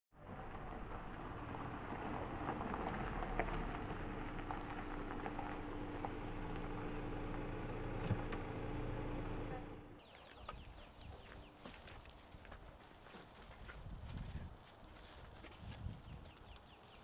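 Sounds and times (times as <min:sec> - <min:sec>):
gravel ticking under tyres: 0:00.2 - 0:09.2, 0:10.0 - 0:17.0
car engine hum: 0:00.2 - 0:10.1.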